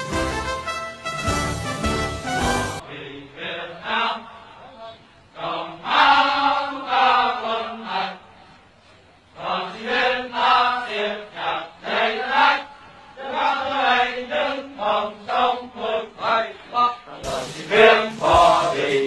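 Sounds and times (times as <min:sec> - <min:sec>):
music: 0:00.0 - 0:02.8, 0:17.2 - 0:19.0
men's voices chanting in unison: 0:09.4 - 0:19.0.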